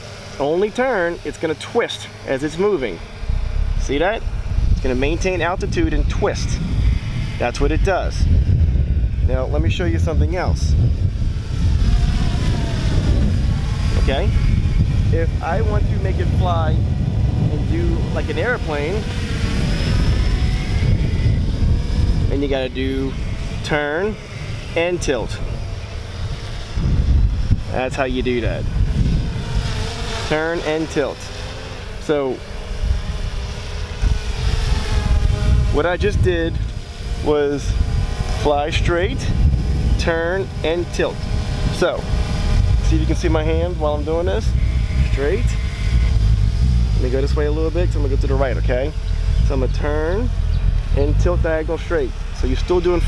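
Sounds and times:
steady low rumble: 0:00.0 - 0:31.2, 0:31.9 - 0:53.0
drone motors buzzing: 0:00.0 - 0:53.0.

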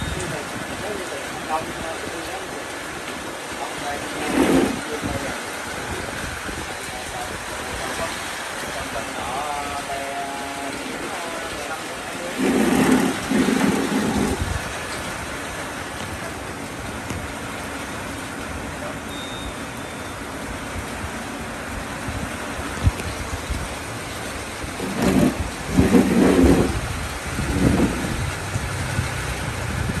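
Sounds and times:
street traffic noise: 0:00.0 - 0:30.0
nearby voices: 0:03.5 - 0:14.4.

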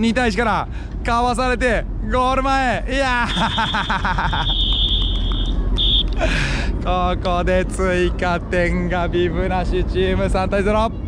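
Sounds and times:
whistle blasts: 0:03.2 - 0:06.2.

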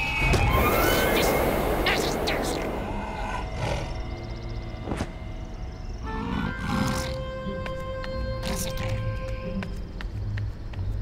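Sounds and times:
light background music: 0:04.6 - 0:11.0.

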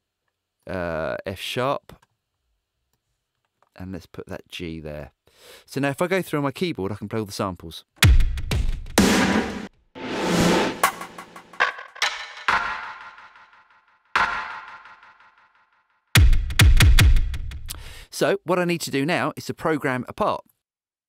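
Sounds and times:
heavy low drum hits: 0:08.0 - 0:11.4
processed drum hits: 0:08.0 - 0:15.2, 0:16.2 - 0:17.7.

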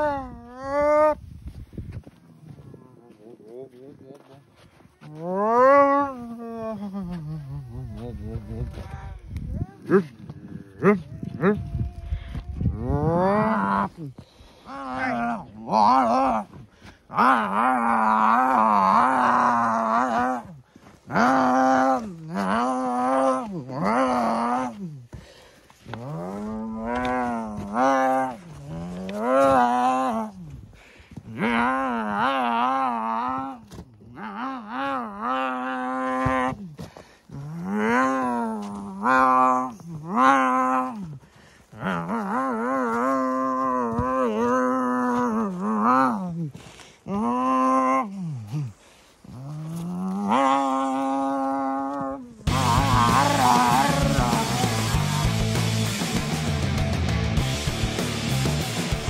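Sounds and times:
person imitating revving engine: 0:50.0 - 0:55.9
rock music: 0:52.5 - 0:59.0.

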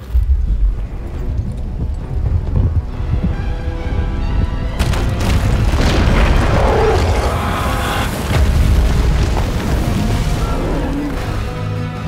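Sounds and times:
deep rumbling boom: 0:00.0 - 0:10.5
orchestral music: 0:00.0 - 0:12.0.

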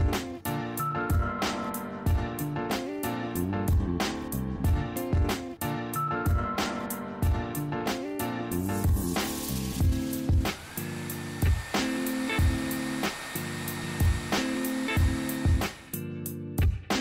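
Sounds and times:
background music with beat: 0:00.0 - 0:10.7, 0:11.3 - 0:17.0
hair dryer blowing: 0:09.1 - 0:16.0.

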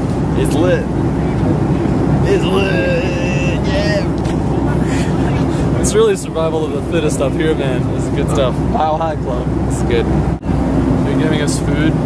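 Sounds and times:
jet airliner cabin engine noise: 0:00.0 - 0:12.0
person speaking: 0:02.2 - 0:05.8.

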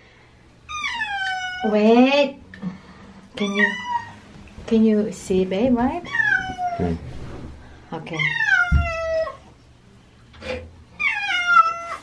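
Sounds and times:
cat meowing: 0:06.0 - 0:07.0, 0:08.2 - 0:09.4, 0:11.0 - 0:12.0.

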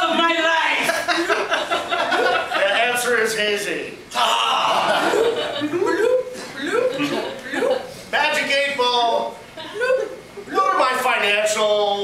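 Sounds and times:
person chuckling and laughing: 0:04.6 - 0:07.9, 0:09.6 - 0:10.2.

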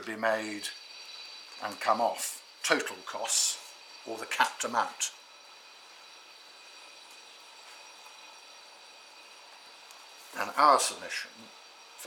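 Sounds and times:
faint hiss: 0:00.0 - 0:12.0
thin high-pitched whines: 0:00.0 - 0:12.0.

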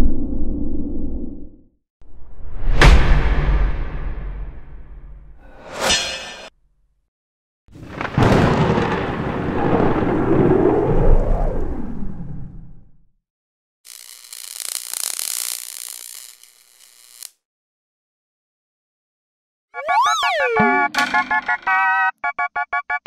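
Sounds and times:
thunder-like rumble with bending tone: 0:07.9 - 0:12.9.

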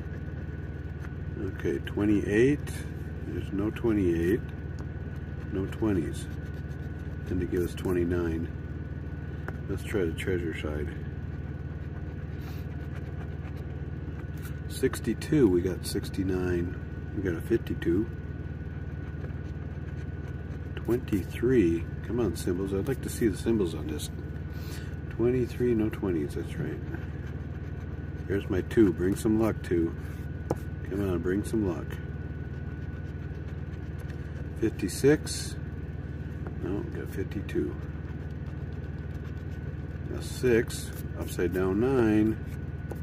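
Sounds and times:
faint high whine: 0:00.0 - 0:43.0
vehicle engine idling: 0:00.0 - 0:43.0
coin scratching lottery ticket: 0:05.2 - 0:08.2, 0:18.7 - 0:35.9, 0:36.5 - 0:43.0.

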